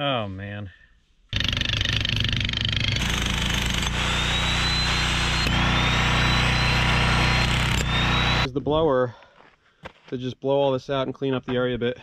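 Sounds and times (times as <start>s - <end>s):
jackhammer pounding rock: 1.3s - 8.5s
high motor whine: 1.4s - 8.5s.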